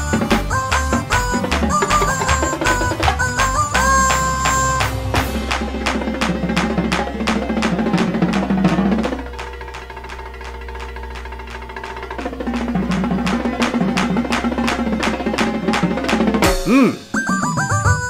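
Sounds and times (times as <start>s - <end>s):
drum-heavy backing track: 0.0s - 18.0s.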